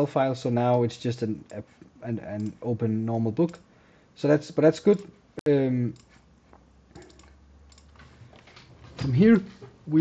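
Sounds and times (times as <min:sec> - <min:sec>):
low steady hum: 0:00.0 - 0:10.0
computer mouse click: 0:02.4 - 0:02.6, 0:03.4 - 0:03.7, 0:06.9 - 0:08.1.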